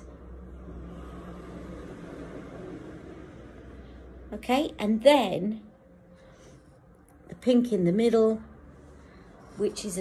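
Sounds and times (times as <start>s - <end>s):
low hum with hiss: 0.0s - 10.0s.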